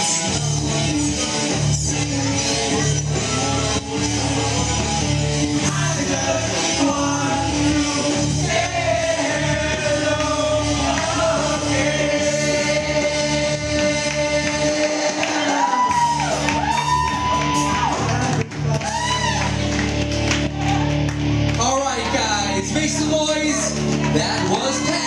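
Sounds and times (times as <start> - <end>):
loud backing music: 0.0 - 25.0
man singing into a microphone: 5.6 - 15.8.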